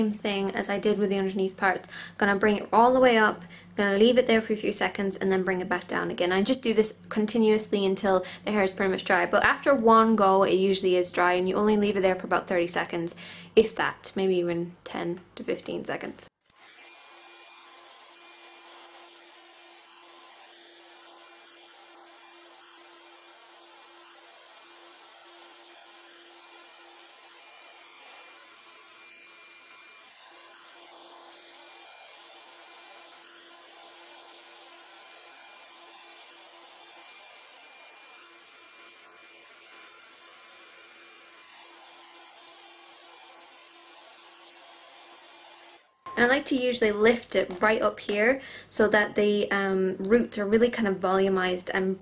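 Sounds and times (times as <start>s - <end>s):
hot air brush fan hissing: 16.6s - 45.9s.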